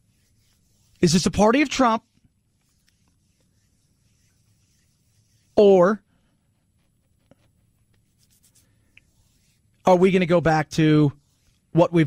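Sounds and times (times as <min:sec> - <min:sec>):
man talking: 0:01.0 - 0:02.1, 0:09.9 - 0:11.2, 0:11.8 - 0:12.0.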